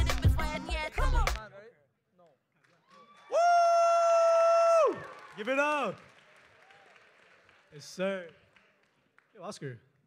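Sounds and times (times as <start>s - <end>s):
person whooping: 2.9s - 5.1s.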